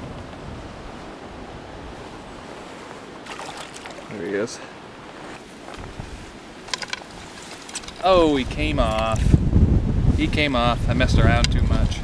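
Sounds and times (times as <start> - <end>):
wind buffeting microphone: 0.0 - 4.2, 4.8 - 12.0
flowing river water: 0.0 - 8.4.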